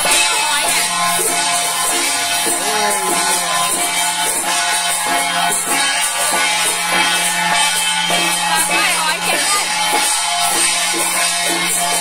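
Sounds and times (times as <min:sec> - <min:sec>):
frame drums and cymbals: 0:00.0 - 0:12.0
held low tone: 0:02.4 - 0:04.6.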